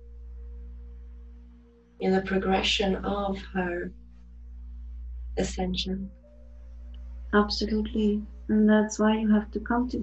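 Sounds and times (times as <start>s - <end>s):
constant low hum: 0.0s - 10.0s
low drone of held tones: 0.0s - 10.0s.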